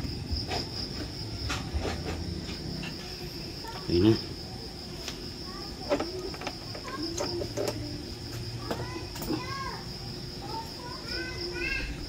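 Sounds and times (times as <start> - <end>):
crickets droning: 0.0 - 12.0.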